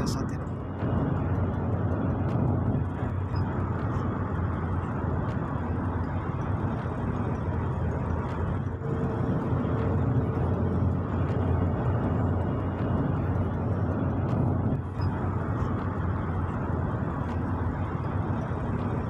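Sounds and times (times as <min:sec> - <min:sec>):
car tyres and engine rumble: 0:00.0 - 0:19.0.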